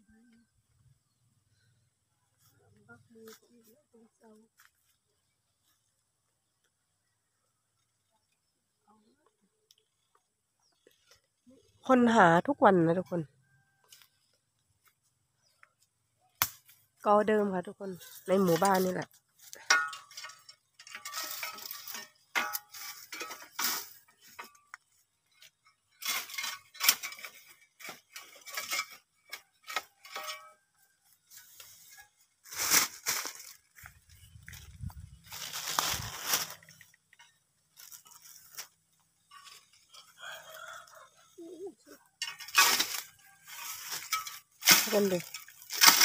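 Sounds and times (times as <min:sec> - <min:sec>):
dry bamboo leaves crackling: 0:09.8 - 0:12.5, 0:15.6 - 0:46.0.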